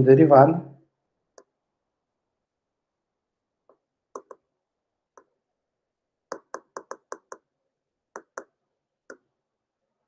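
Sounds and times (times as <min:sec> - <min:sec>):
stylus tapping on a screen: 0:03.6 - 0:04.5, 0:06.3 - 0:09.3.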